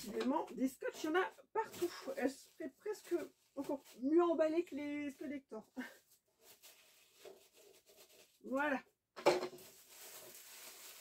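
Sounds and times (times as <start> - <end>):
tissue paper rustling and crackling: 0.9 - 8.8, 9.5 - 11.0.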